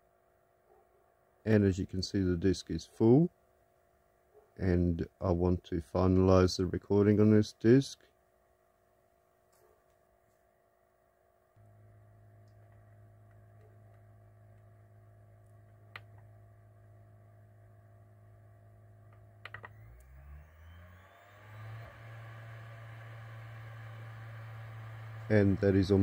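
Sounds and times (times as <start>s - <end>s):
low steady hum: 0.0s - 26.0s
disc spinning up with whine: 11.6s - 26.0s.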